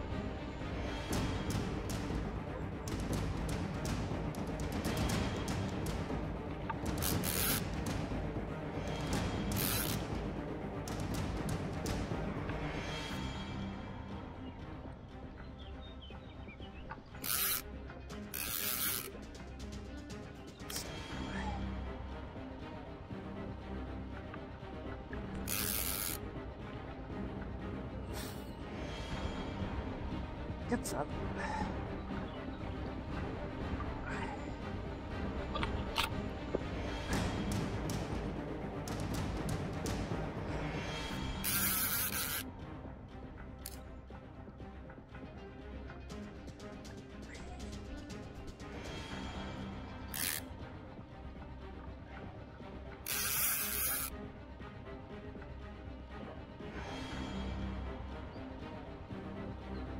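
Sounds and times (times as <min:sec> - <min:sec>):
background music with steady beat: 0:00.0 - 0:59.9
fishing reel drag buzzing: 0:07.0 - 0:07.6, 0:09.6 - 0:10.0, 0:17.2 - 0:17.6, 0:18.3 - 0:19.1, 0:25.4 - 0:26.2, 0:41.4 - 0:42.4, 0:50.1 - 0:50.4, 0:53.1 - 0:54.1.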